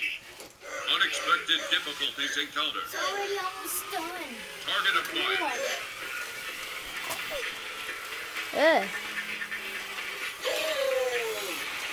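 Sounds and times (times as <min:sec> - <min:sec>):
toy robots whirring: 0:00.0 - 0:11.9.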